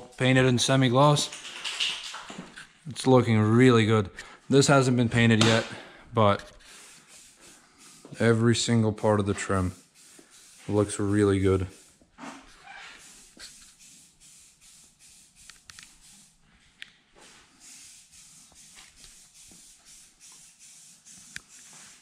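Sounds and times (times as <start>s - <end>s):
faint hissing: 4.2s - 16.4s, 17.2s - 22.0s.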